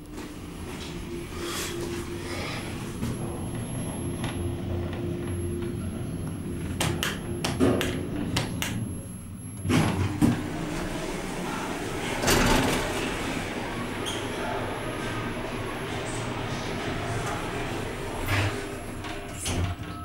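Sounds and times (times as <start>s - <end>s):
elevator low hum: 0.0s - 20.0s
elevator doors sliding open: 0.1s - 20.0s
elevator clicks: 3.0s - 11.0s, 15.1s - 20.0s.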